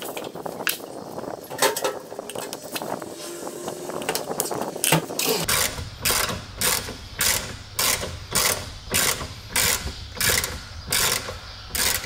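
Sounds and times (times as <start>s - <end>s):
ratchet wrench clicking: 5.4s - 12.0s.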